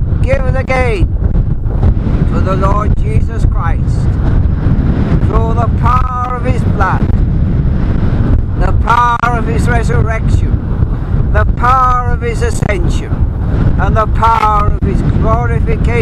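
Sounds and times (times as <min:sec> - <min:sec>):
wind buffeting microphone: 0:00.0 - 0:16.0
man speaking: 0:00.2 - 0:01.1, 0:02.3 - 0:04.1, 0:05.3 - 0:07.1, 0:08.6 - 0:10.6, 0:11.3 - 0:13.2, 0:13.8 - 0:16.0.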